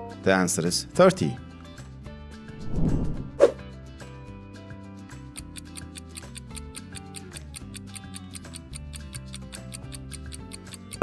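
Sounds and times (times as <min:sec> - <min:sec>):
fast ticking beat: 0:05.3 - 0:11.0.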